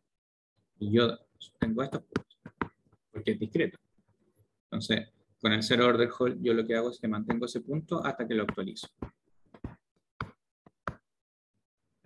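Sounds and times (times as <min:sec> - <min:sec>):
stylus tapping on tablet: 0:01.6 - 0:03.0, 0:08.4 - 0:11.1.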